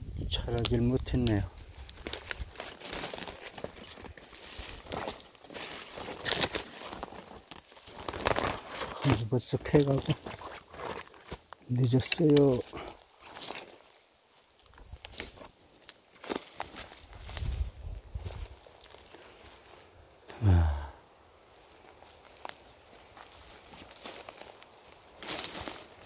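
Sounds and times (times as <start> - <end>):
footsteps crunching through pine needles: 0.4 - 20.4, 21.1 - 26.0
brush rustling: 0.5 - 20.0, 21.5 - 26.0
person grunting: 20.3 - 21.0.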